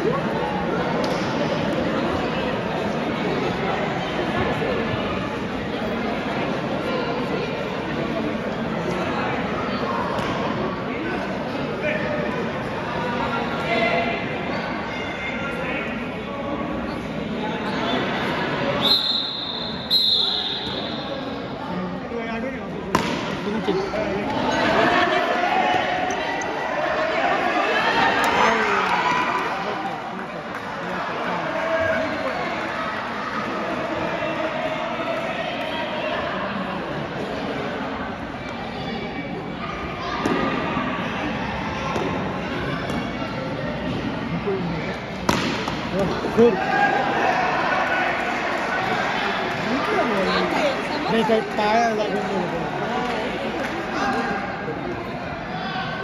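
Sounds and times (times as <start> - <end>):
people chattering in a hall: 0.0 - 56.0
cricket bat striking ball: 22.9 - 23.3, 45.3 - 45.8.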